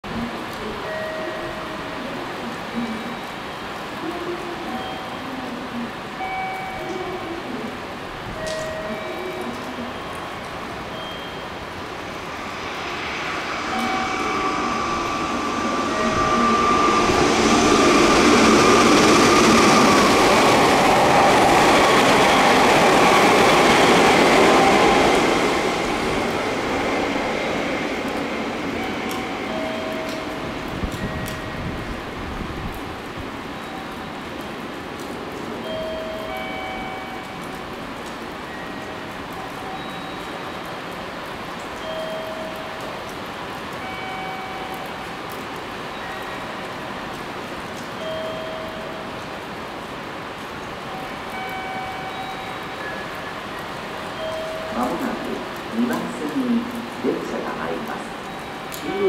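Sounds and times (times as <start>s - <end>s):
electric train passing at speed: 0.0s - 59.0s.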